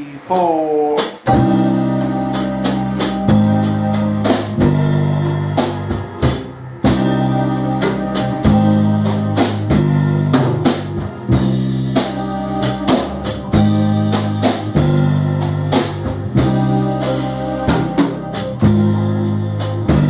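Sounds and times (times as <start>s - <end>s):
bass and chord backing: 0.0s - 20.0s
electronic keyboard: 0.0s - 20.0s
steady drum beat: 0.0s - 20.0s.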